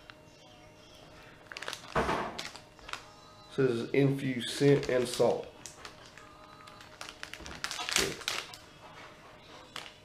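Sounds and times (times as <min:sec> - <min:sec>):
plastic packaging crinkling: 0:01.1 - 0:03.5, 0:04.3 - 0:08.7, 0:09.7 - 0:10.0.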